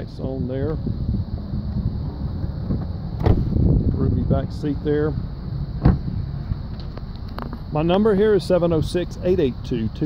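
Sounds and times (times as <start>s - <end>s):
steady low rumble: 0.0s - 10.0s
car door shutting: 2.6s - 3.6s, 5.8s - 7.6s.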